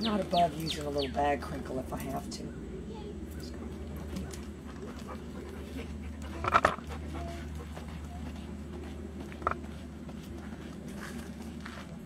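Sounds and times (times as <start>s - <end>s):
dog panting: 4.0s - 11.4s.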